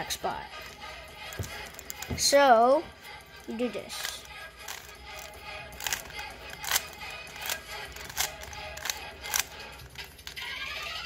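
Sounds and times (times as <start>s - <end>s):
faint background music: 0.0s - 11.0s
puzzle cube clicking turns: 4.0s - 10.5s.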